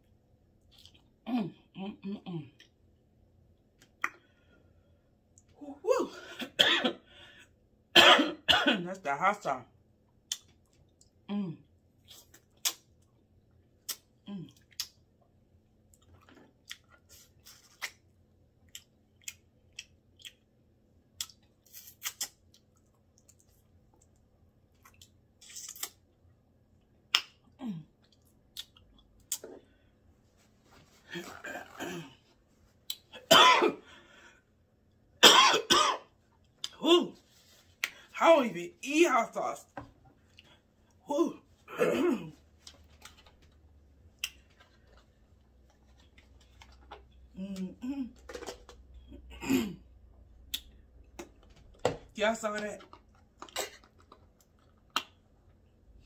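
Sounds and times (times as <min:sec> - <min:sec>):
woman coughing: 0:06.0 - 0:07.0, 0:08.0 - 0:09.0, 0:31.2 - 0:32.2, 0:33.2 - 0:33.8, 0:35.2 - 0:36.1, 0:41.7 - 0:42.4, 0:49.3 - 0:49.8.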